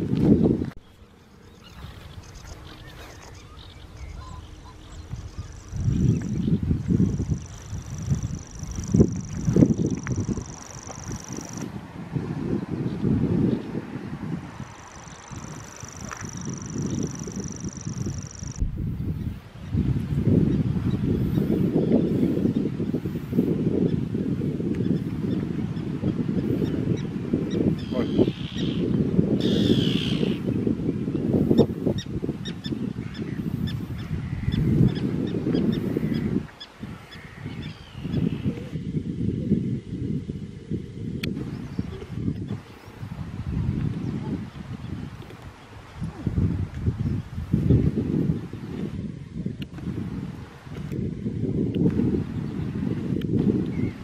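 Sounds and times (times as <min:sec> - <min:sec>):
wind rumbling on microphone: 0:00.0 - 0:54.0
bird calls: 0:00.8 - 0:11.6, 0:24.8 - 0:30.6, 0:31.4 - 0:38.8.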